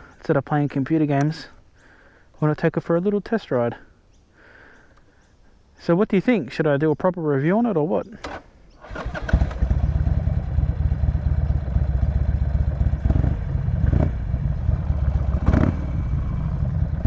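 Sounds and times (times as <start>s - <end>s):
motorcycle engine running: 9.0s - 17.0s.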